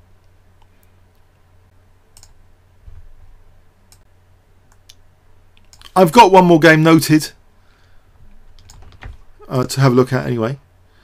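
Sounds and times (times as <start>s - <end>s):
low steady hum: 0.0s - 11.0s
computer mouse clicks: 2.1s - 2.4s, 3.9s - 4.1s, 4.7s - 6.0s, 8.5s - 9.2s
soft low thump: 2.8s - 3.3s.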